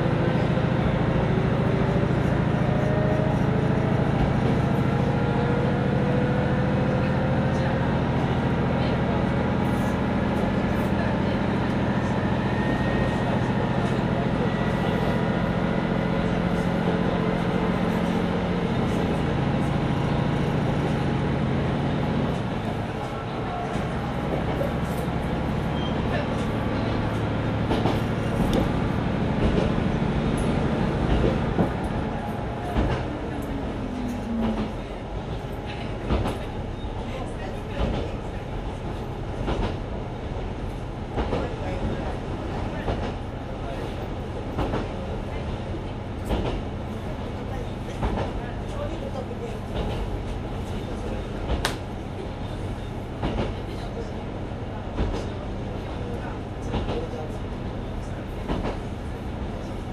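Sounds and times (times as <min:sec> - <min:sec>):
diesel railcar engine: 0:00.0 - 0:59.9
rail-joint clicks: 0:22.3 - 0:28.8, 0:29.4 - 0:37.0, 0:37.7 - 0:38.4, 0:39.4 - 0:39.8, 0:41.2 - 0:41.6, 0:44.5 - 0:45.6, 0:46.2 - 0:47.0, 0:47.9 - 0:48.8, 0:49.7 - 0:50.1, 0:50.7 - 0:51.9, 0:52.8 - 0:53.8, 0:55.0 - 0:55.4, 0:56.6 - 0:57.1, 0:58.4 - 0:58.9.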